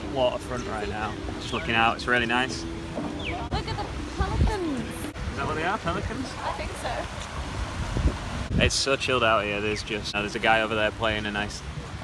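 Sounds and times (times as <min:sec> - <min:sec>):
people talking: 0:03.4 - 0:07.1, 0:08.6 - 0:11.6.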